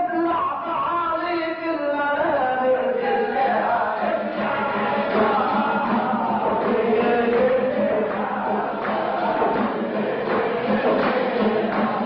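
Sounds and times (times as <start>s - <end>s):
voices chanting a sung verse: 2.1s - 12.0s.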